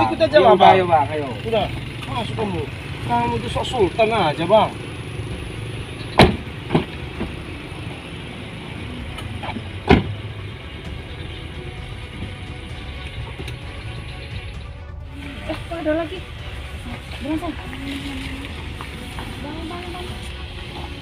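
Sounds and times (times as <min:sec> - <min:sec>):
low vehicle rumble: 0:00.0 - 0:21.0
car doors slamming: 0:06.1 - 0:07.5, 0:09.4 - 0:10.3.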